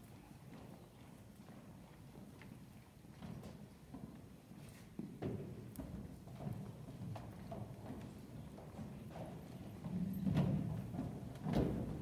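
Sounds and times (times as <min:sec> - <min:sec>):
footsteps on hollow wooden stage: 0:00.0 - 0:12.0.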